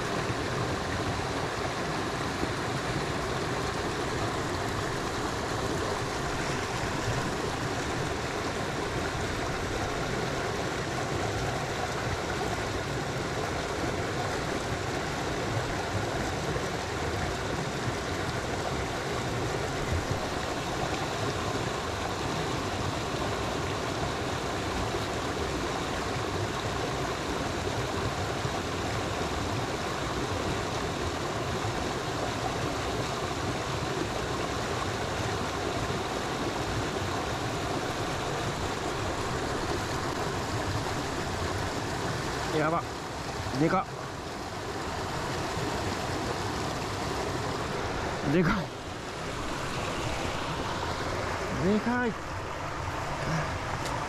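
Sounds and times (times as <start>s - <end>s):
flowing stream water: 0.0s - 54.0s.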